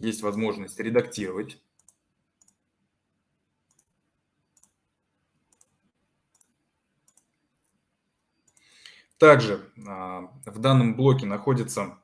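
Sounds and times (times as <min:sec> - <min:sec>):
computer mouse clicking: 0:01.8 - 0:02.6, 0:03.7 - 0:03.9, 0:04.6 - 0:04.8, 0:05.5 - 0:07.8, 0:08.4 - 0:08.7.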